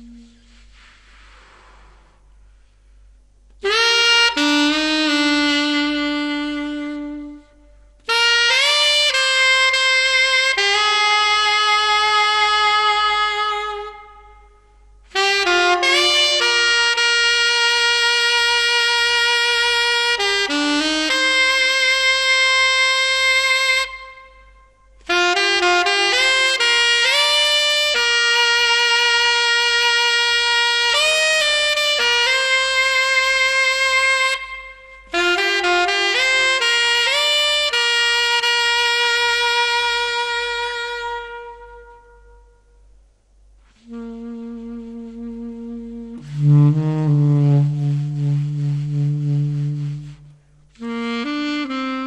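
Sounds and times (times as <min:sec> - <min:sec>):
alto saxophone long notes: 0:00.0 - 0:02.0, 0:03.6 - 0:42.9, 0:43.6 - 0:52.0.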